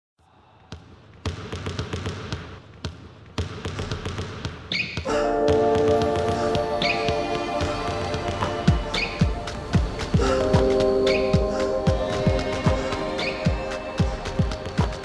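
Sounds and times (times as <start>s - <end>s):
basketballs bouncing on wood floor: 0.7s - 5.1s
sneakers squeaking: 1.2s - 5.6s, 6.3s - 11.5s
music with sustained chords: 5.1s - 15.0s.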